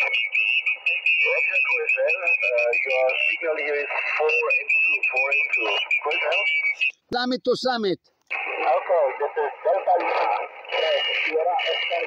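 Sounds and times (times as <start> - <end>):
steady high whistle: 0.0 - 7.0
radio voice through speaker: 1.2 - 6.5, 8.3 - 12.0.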